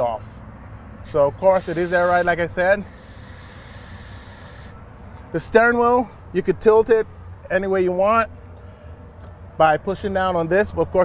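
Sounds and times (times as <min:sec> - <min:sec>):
compressed air hissing from valve: 0:01.0 - 0:04.8.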